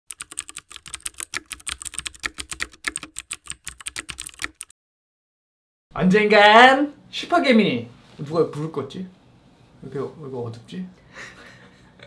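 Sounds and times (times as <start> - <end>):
keyboard typing clicks: 0.1 - 4.7.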